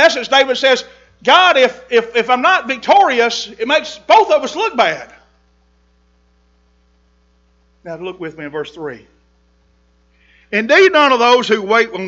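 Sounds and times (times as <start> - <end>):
man talking: 0.0 - 5.2, 7.9 - 9.1, 10.5 - 12.0
electrical mains hum: 0.0 - 12.0.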